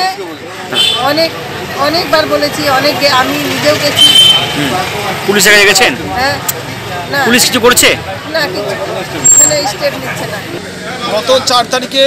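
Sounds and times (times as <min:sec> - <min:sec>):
street background noise: 0:00.0 - 0:12.0
woman talking: 0:01.0 - 0:04.1.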